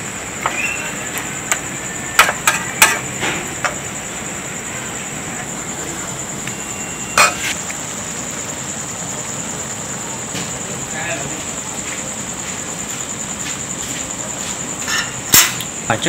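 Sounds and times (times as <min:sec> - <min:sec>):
metal spatula scraping a pan: 0:07.2 - 0:07.6.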